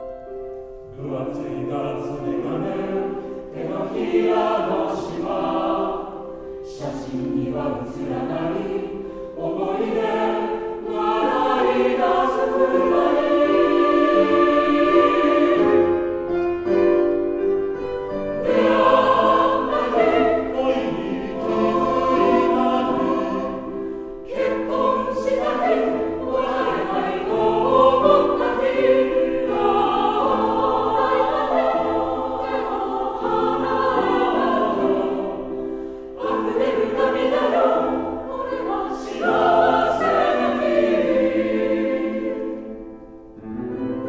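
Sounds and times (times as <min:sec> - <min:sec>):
mixed choir singing: 0:00.9 - 0:16.4, 0:18.2 - 0:43.9.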